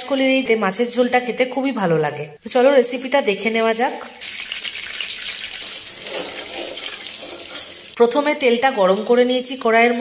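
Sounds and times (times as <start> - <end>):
hot oil sizzling: 4.2 - 8.0.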